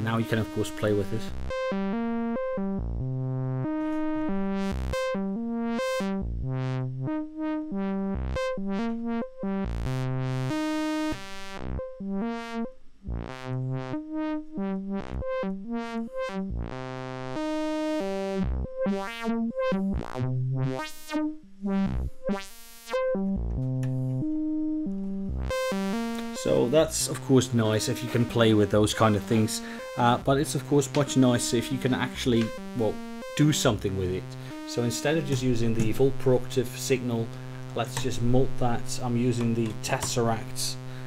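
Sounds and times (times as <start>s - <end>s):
filtered synthesizer sequence: 0.0s - 41.0s.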